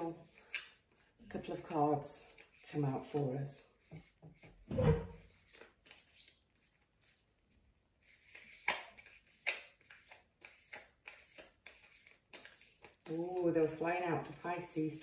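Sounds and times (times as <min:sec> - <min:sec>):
cards being shuffled: 0:08.0 - 0:14.4.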